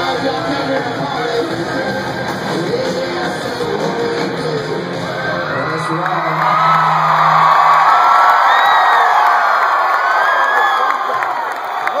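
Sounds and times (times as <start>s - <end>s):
concert crowd cheering: 0.0s - 12.0s.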